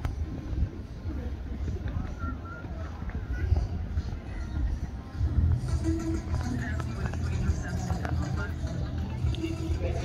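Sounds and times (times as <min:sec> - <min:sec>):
faint music: 0:00.0 - 0:10.0
faint voices: 0:00.0 - 0:10.0.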